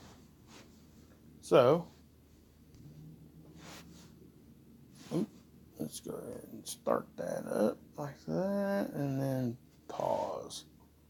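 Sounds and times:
man speaking: 0:01.4 - 0:01.9, 0:05.1 - 0:10.7.

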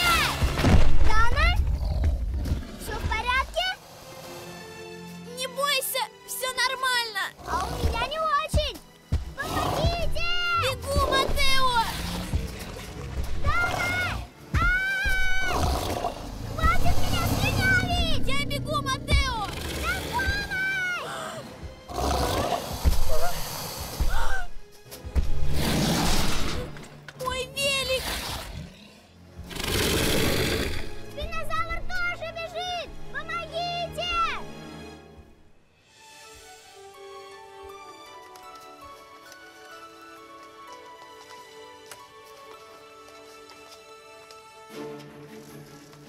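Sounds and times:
film soundtrack music: 0:00.0 - 0:46.0
wordless cries: 0:16.6 - 0:24.6.

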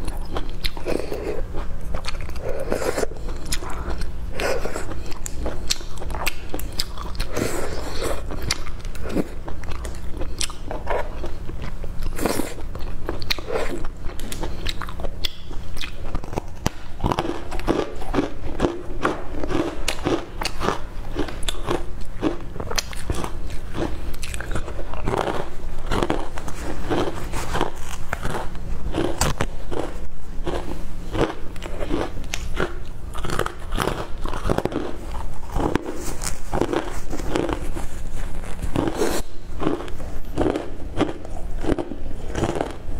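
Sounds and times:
crunching and chewing fried dough: 0:00.0 - 0:42.9.

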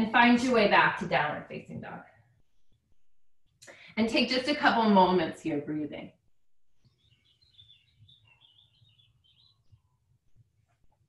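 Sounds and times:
faint bird chirping: 0:06.5 - 0:10.0.

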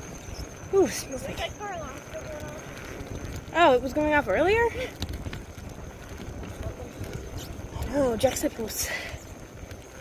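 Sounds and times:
road noise: 0:00.0 - 0:10.0
wind on microphone: 0:00.0 - 0:10.0.

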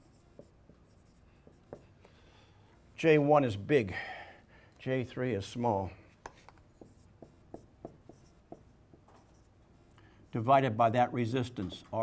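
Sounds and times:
marker writing on a whiteboard: 0:00.0 - 0:03.3, 0:05.6 - 0:10.6.

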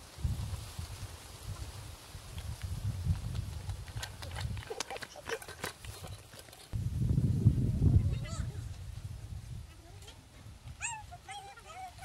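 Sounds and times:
wind rumbling on microphone: 0:00.0 - 0:05.1, 0:05.8 - 0:12.0.

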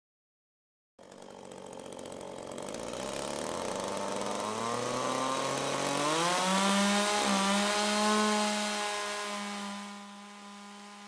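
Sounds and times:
chainsaw engine revving: 0:01.0 - 0:11.0.

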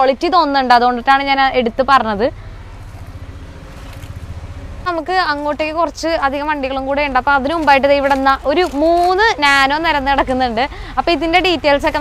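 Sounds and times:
motor vehicle engine rumbling: 0:00.0 - 0:12.0.

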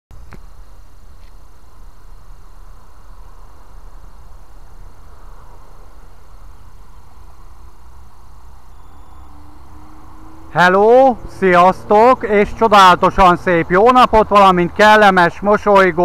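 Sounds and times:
faint steady hum: 0:00.2 - 0:16.0
low rumble with faint hiss: 0:00.2 - 0:16.0.

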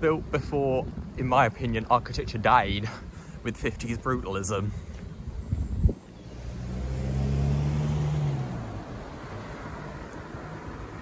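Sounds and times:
car driving past: 0:06.2 - 0:11.0.

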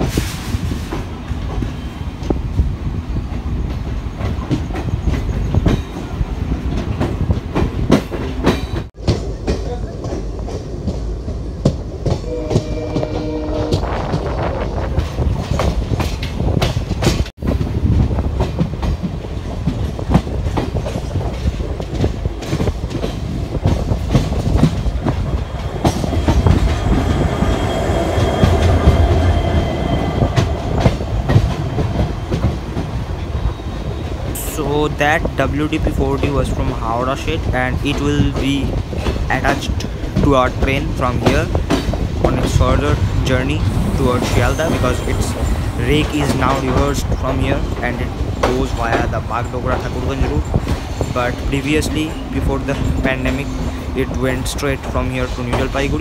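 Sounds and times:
train low rumble: 0:00.0 - 0:56.0
train wheels clattering over joints: 0:03.3 - 0:56.0.

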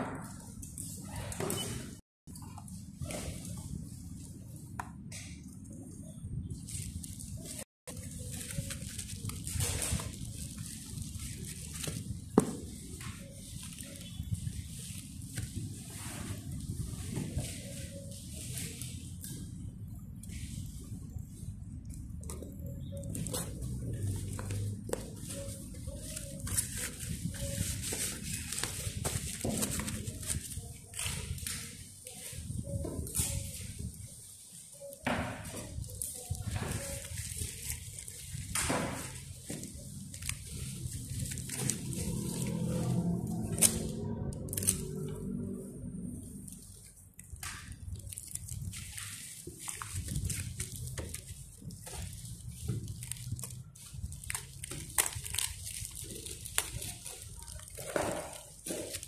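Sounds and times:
low background noise: 0:00.0 - 0:59.0
bubble mailer rustling and crinkling: 0:05.7 - 0:59.0.

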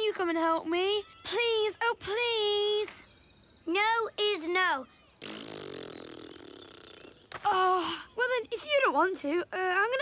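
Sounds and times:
cartoon character blowing raspberry: 0:05.2 - 0:07.2.

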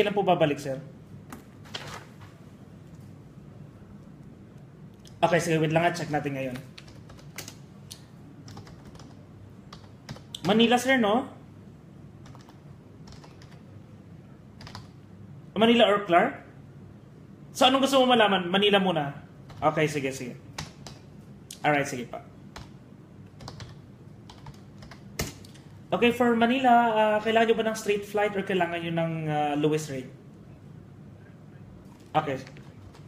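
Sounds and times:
steady low hum: 0:00.0 - 0:33.0
computer keyboard typing: 0:06.4 - 0:07.6, 0:08.4 - 0:10.7, 0:12.2 - 0:13.7, 0:14.6 - 0:15.0, 0:19.5 - 0:19.8, 0:20.6 - 0:21.1, 0:22.5 - 0:25.6, 0:31.9 - 0:33.0.

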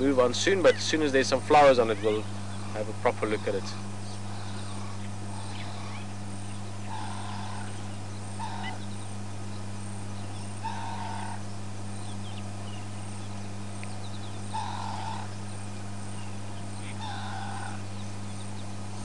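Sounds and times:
steady low hum: 0:00.0 - 0:19.0
animal call: 0:00.5 - 0:09.0, 0:10.4 - 0:11.5, 0:14.2 - 0:15.5, 0:16.6 - 0:18.0.

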